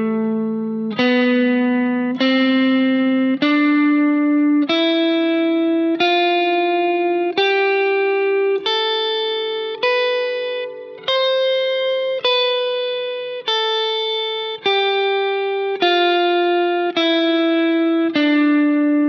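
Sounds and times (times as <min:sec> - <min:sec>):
electric guitar playing scale: 0:00.0 - 0:19.0.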